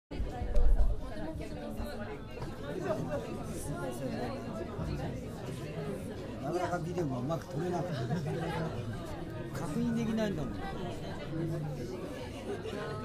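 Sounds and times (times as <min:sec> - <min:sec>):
people chatting: 0:00.1 - 0:13.0.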